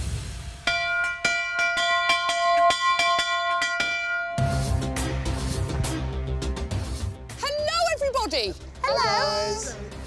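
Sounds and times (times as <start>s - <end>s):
bell clanging: 0.7s - 4.8s.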